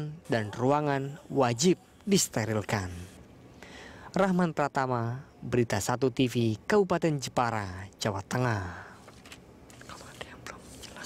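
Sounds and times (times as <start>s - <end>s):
soft hissy sounds: 0.0s - 6.6s, 7.2s - 11.0s
faint whispering: 9.7s - 11.0s.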